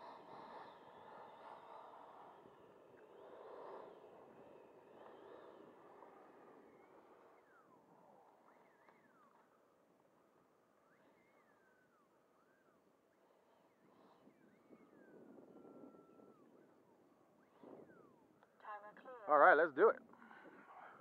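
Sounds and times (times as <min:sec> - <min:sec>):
faint outdoor ambience: 0:00.0 - 0:21.0
whistled bird calls: 0:10.6 - 0:18.2.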